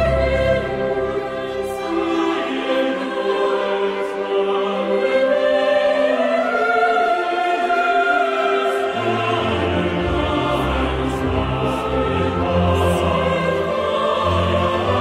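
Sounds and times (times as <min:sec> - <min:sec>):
choir singing: 0:00.0 - 0:15.0
orchestra playing: 0:00.0 - 0:15.0.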